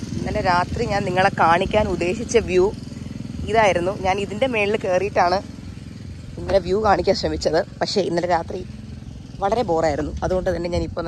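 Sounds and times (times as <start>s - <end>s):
low engine-like drone: 0.0s - 11.0s
woman talking: 0.1s - 2.8s, 3.4s - 5.5s, 6.3s - 8.7s, 9.4s - 11.0s.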